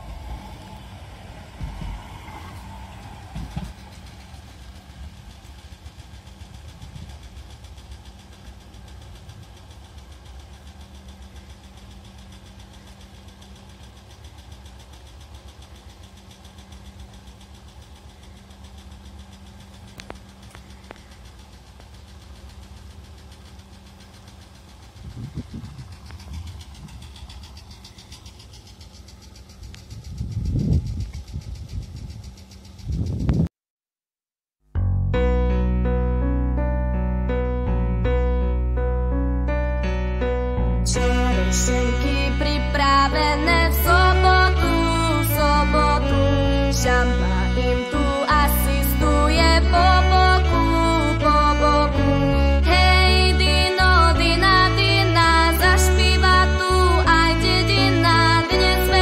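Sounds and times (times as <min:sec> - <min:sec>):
funicular car rumbling: 0:00.0 - 0:33.5, 0:34.8 - 0:59.0
low bursts: 0:00.0 - 0:33.5.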